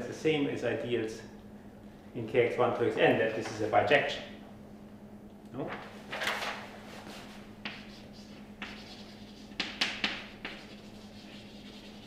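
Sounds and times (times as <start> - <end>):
chalk scraping on blackboard: 7.6 - 12.0
chalk tapping on blackboard: 7.6 - 12.0.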